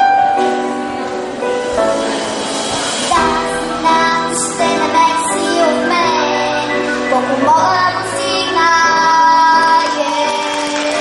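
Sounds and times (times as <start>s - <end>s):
musical accompaniment: 0.0s - 11.0s
girl singing into microphone: 3.0s - 11.0s.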